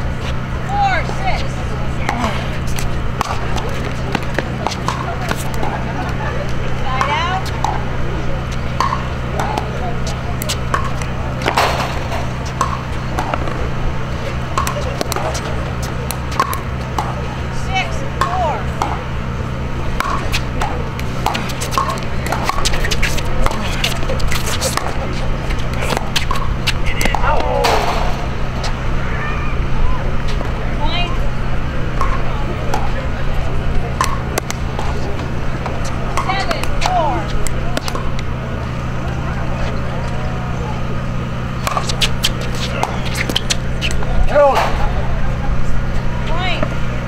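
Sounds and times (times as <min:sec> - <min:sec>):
spectators' voices: 0:00.0 - 0:47.0
steady low hum: 0:00.0 - 0:47.0
pickleball paddle hits and bounces: 0:02.0 - 0:06.2, 0:06.9 - 0:07.9, 0:08.7 - 0:13.7, 0:14.5 - 0:19.0, 0:19.9 - 0:28.7, 0:32.0 - 0:33.0, 0:34.0 - 0:38.3, 0:41.6 - 0:45.0.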